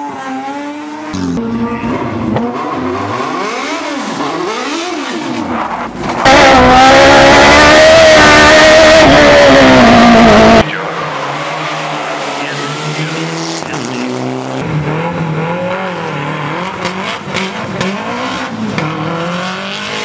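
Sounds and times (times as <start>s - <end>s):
distorted race car engine: 0.0s - 20.0s
rally car engine revving: 0.0s - 20.0s.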